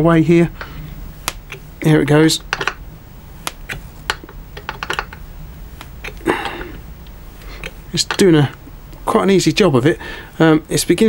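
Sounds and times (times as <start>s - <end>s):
wrist joint cracking: 0.6s - 2.8s, 3.4s - 9.0s.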